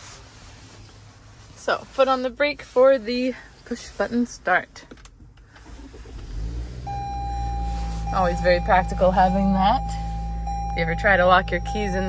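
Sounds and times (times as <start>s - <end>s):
car engine starting and idling: 0.2s - 12.0s.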